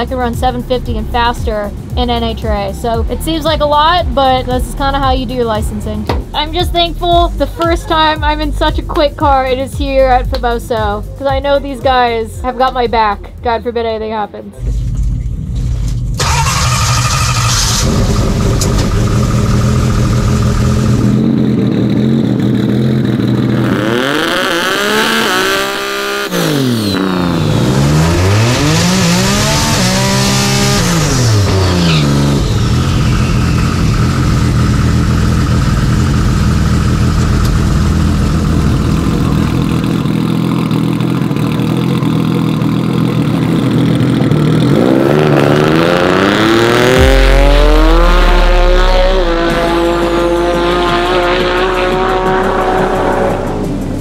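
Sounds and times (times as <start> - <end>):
race car engine revving: 14.6 - 54.0.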